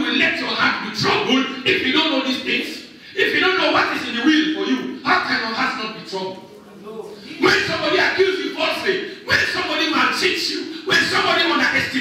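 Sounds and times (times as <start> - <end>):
man preaching loudly: 0.0 - 6.4, 7.3 - 12.0.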